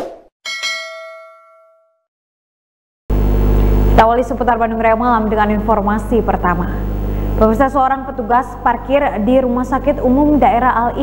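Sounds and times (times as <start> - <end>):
notification bell ding: 0.5 - 2.0
steady low hum: 3.1 - 11.0.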